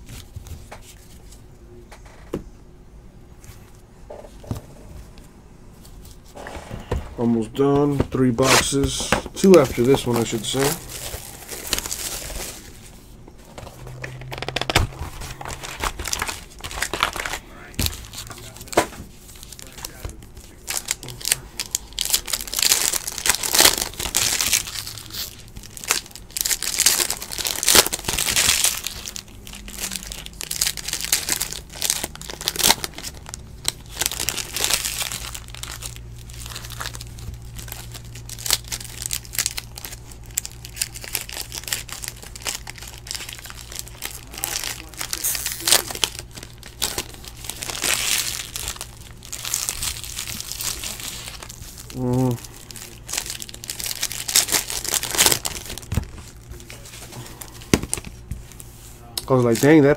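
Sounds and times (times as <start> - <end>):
cards being handled: 7.8 - 21.4
foil wrapper crinkling and tearing: 8.4 - 59.9.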